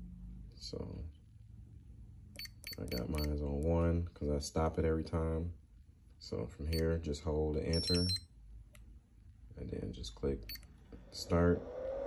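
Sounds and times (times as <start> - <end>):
short high beeps of charger: 2.4 - 3.4, 7.7 - 8.3, 10.4 - 10.7.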